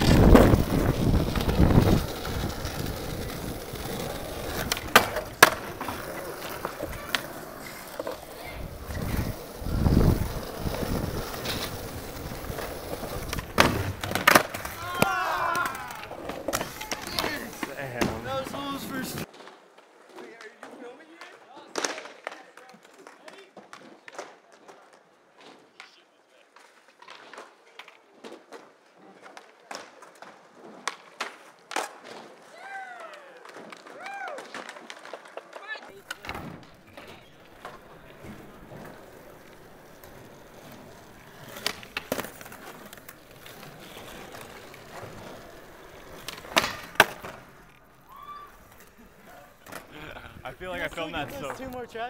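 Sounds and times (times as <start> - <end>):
skateboard clacks: 0.0 - 51.9
skateboards rolling on concrete: 0.0 - 52.0.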